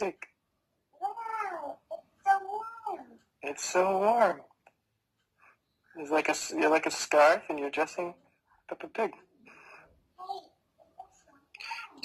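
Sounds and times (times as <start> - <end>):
toddler wordless vocal sound: 1.0 - 3.3, 10.2 - 12.0.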